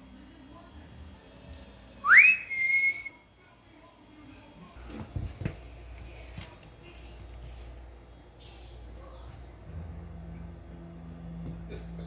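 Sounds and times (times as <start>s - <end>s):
person whistling: 2.0s - 3.2s.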